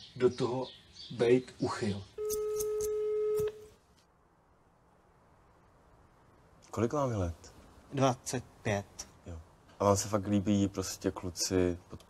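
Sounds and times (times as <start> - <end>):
electronic beep tone: 2.2 - 3.7.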